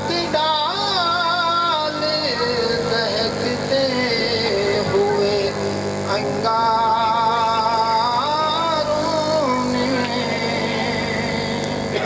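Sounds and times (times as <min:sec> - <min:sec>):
hum of held tones: 0:00.0 - 0:12.0.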